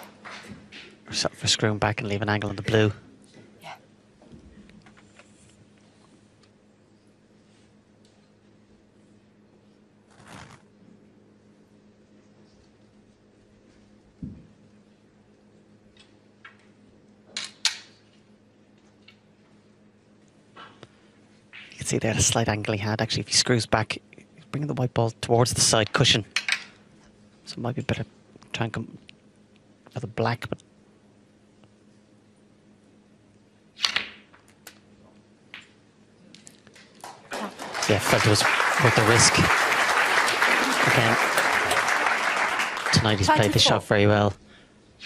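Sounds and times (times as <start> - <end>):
audience applause: 37.0 - 43.8.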